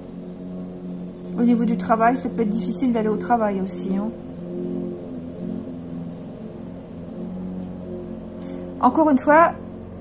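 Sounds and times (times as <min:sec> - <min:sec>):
soft music with low chords: 0:00.0 - 0:10.0.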